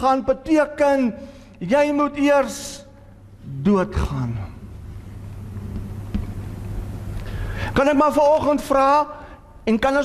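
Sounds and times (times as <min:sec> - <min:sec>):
low steady rumble: 0:01.3 - 0:10.0.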